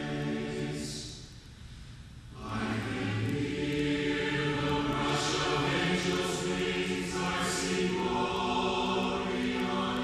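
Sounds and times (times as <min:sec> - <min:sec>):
choir singing sustained chords: 0:00.0 - 0:01.3, 0:02.3 - 0:10.0.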